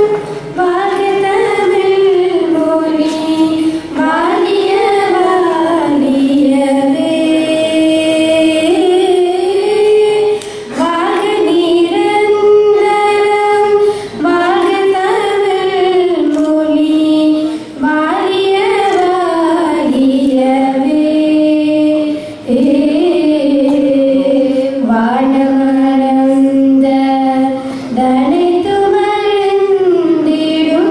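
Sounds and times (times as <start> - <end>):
girls singing: 0.0 - 30.9.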